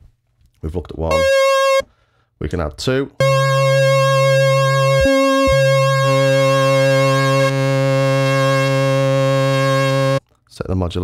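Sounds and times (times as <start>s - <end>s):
second synthesizer tone: 1.1s - 1.8s, 3.2s - 10.2s
synthesizer sustained note: 1.1s - 1.8s, 3.2s - 10.2s.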